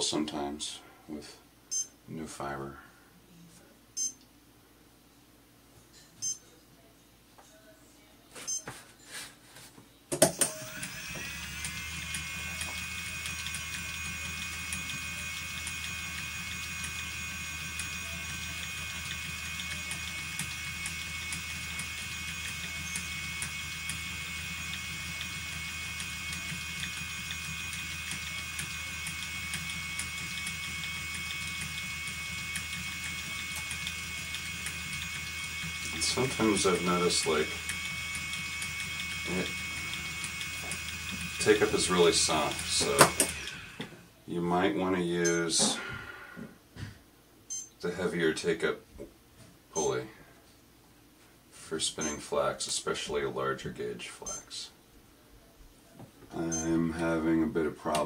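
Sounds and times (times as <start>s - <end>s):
electric motor whine and hum: 10.4s - 44.9s.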